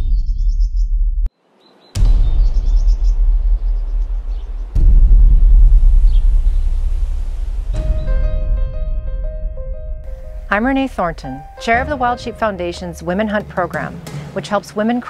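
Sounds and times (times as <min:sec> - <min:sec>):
deep rumbling drone: 0:00.0 - 0:01.3, 0:02.0 - 0:14.9
bird chirps: 0:01.6 - 0:04.6
steady musical notes: 0:07.8 - 0:15.0.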